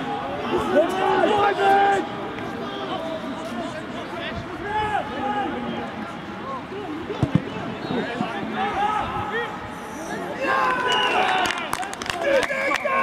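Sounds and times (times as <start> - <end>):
voices calling and shouting: 0.0 - 13.0
short thumps: 7.2 - 7.6.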